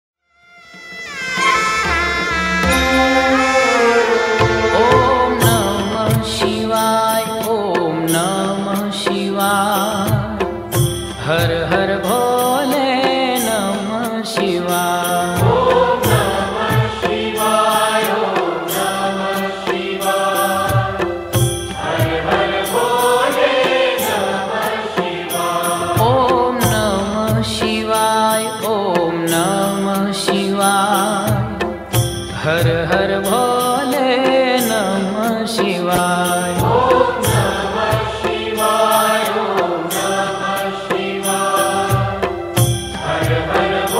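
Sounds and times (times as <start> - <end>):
devotional chant over music: 2.6 - 43.9.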